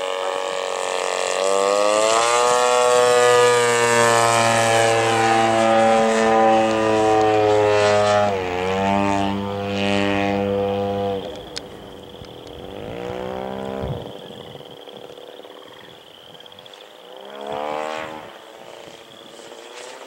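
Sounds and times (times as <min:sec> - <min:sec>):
model plane engine and propeller: 0:00.0 - 0:20.0.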